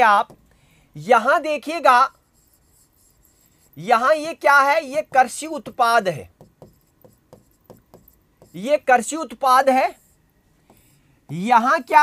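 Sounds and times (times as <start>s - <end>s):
marker pen scratching on whiteboard: 1.6s - 12.0s.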